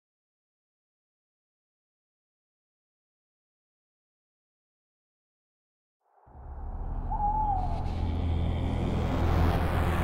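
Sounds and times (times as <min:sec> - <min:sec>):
low steady drone: 0:06.2 - 0:10.0
owl hooting: 0:07.0 - 0:08.2.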